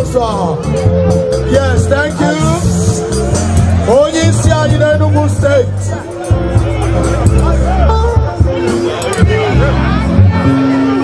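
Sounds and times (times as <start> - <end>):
loud music with steady bass line: 0.0 - 11.0.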